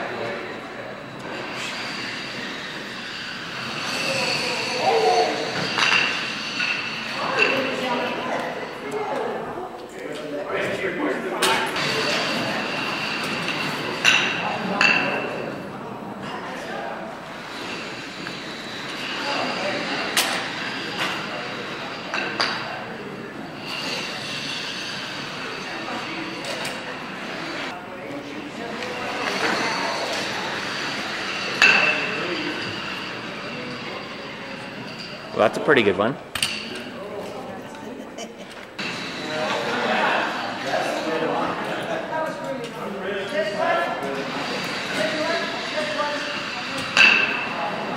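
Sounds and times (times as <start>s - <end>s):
voices murmuring: 3.8s - 36.2s.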